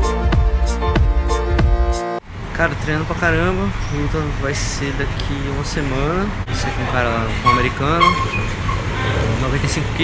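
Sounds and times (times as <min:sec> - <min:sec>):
traffic rumble: 0:02.2 - 0:10.0.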